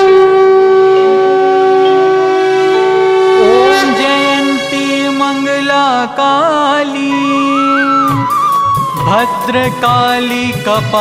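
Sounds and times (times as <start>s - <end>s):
conch shell blown: 0.0s - 6.0s
soft music drone: 0.0s - 7.8s.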